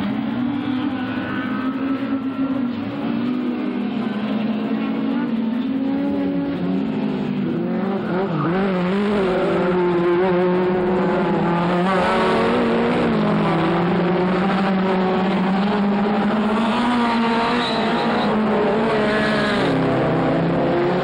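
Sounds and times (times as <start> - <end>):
race car engines revving: 0.0 - 21.0.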